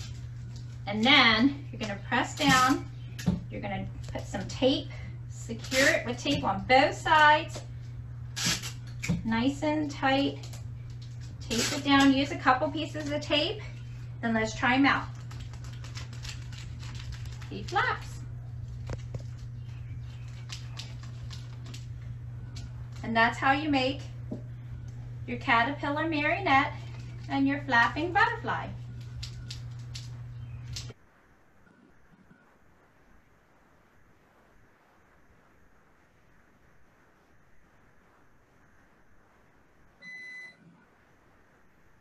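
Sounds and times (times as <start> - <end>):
paper and straws ticking and rustling: 0.0 - 1.1, 15.0 - 23.1, 26.8 - 27.4, 28.9 - 31.0
faint room noise: 0.0 - 42.0
steady low hum: 0.0 - 42.0
electronic beep: 40.0 - 40.6.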